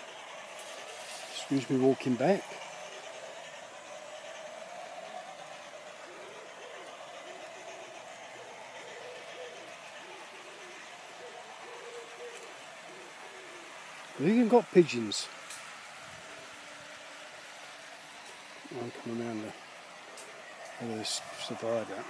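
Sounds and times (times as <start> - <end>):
faint steady hum: 0.0 - 22.0
pigeons cooing: 0.0 - 22.0.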